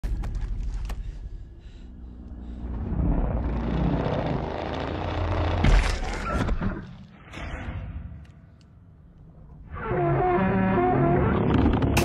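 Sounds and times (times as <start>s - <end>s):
low rumble: 0.0s - 6.2s.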